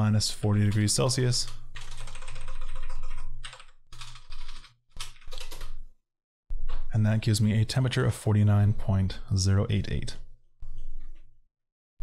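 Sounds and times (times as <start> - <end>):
man talking: 0.0 - 1.6, 6.9 - 10.2
rapid keystrokes typing: 1.7 - 5.8.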